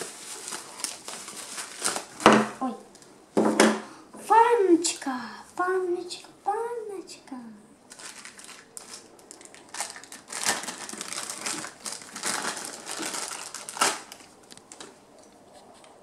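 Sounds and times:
plastic packaging crinkling: 0.0 - 3.1, 7.9 - 15.4.

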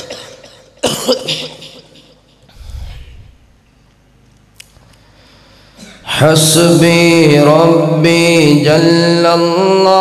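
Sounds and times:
man coughing: 0.0 - 2.3
low rumble: 2.6 - 3.6.

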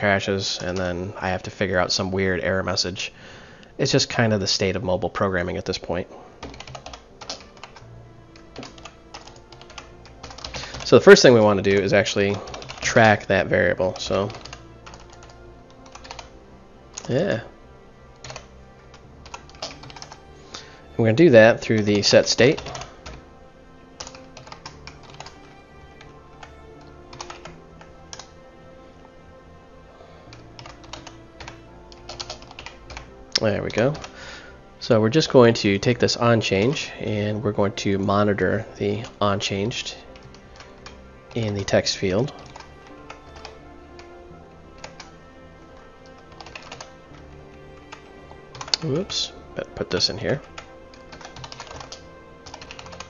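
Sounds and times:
quiet background music: 0.0 - 53.0
keyboard typing: 6.4 - 13.2, 13.9 - 16.3, 18.1 - 20.7, 21.7 - 23.3, 24.0 - 28.4, 30.2 - 34.2, 40.1 - 53.0.

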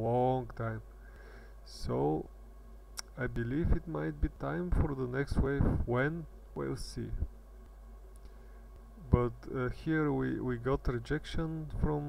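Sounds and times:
low room hum: 0.0 - 12.0
person speaking: 3.0 - 7.4, 9.0 - 12.0.

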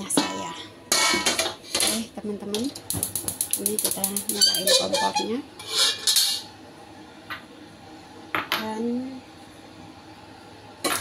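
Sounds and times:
gas burner hissing: 0.6 - 6.5.

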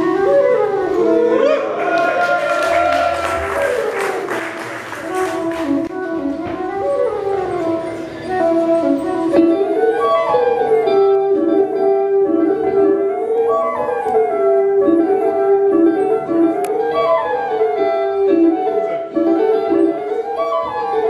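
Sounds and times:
solo flute melody: 0.0 - 21.0.

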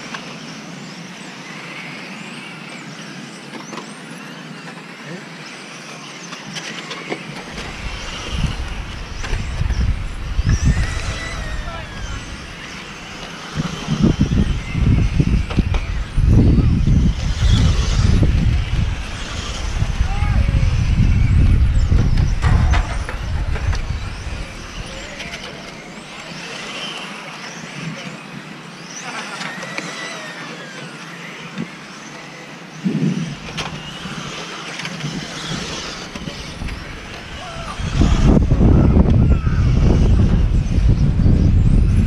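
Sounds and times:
electric motor whining: 0.0 - 42.0
wind buffeting microphone: 7.4 - 26.2, 32.8 - 42.0.

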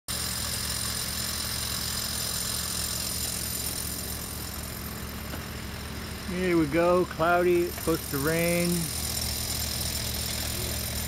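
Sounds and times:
machine engine idling: 0.1 - 11.0.

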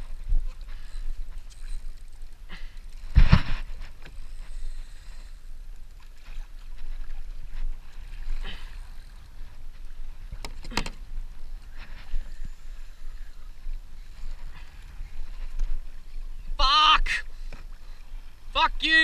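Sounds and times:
water splashing against kayak hull: 0.0 - 4.9.

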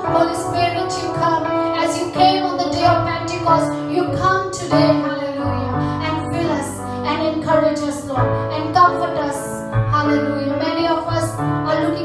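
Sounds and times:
electronic keyboard: 0.0 - 12.0.

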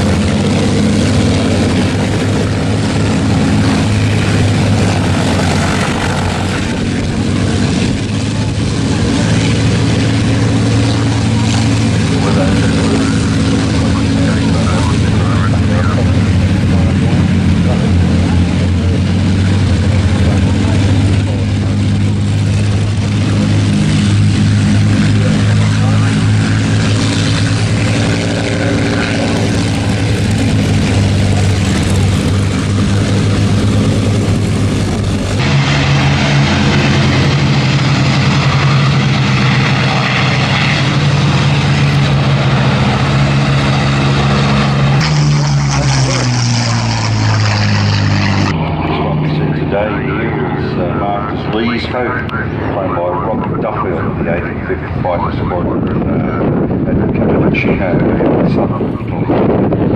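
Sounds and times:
propeller aircraft engines droning: 0.0 - 59.9.

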